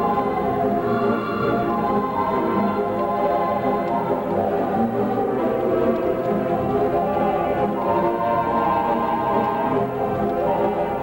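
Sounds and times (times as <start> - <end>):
theatre pipe organ playing: 0.0 - 11.0.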